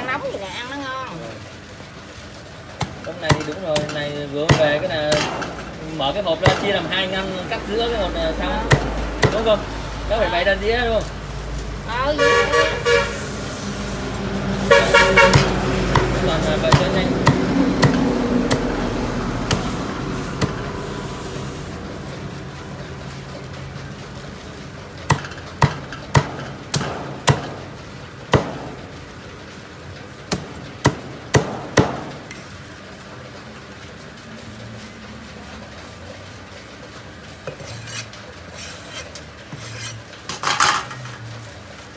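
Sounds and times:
passing traffic: 0.0s - 41.9s
vehicle horn honks: 12.1s - 13.2s, 14.7s - 15.5s.

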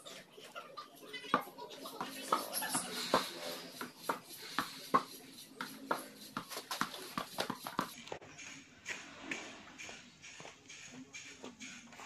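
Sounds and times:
ball bouncing on concrete: 1.2s - 12.0s
footsteps: 1.4s - 12.0s.

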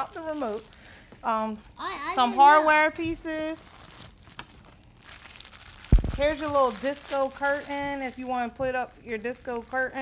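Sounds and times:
plastic packaging crinkling: 0.0s - 1.8s, 3.2s - 10.0s.

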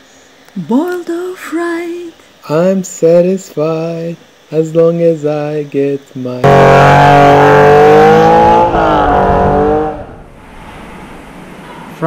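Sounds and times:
car engine accelerating away: 6.4s - 11.2s.

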